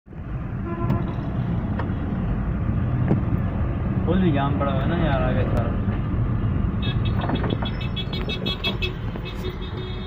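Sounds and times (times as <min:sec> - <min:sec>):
car engine and traffic rumble: 0:00.1 - 0:10.0.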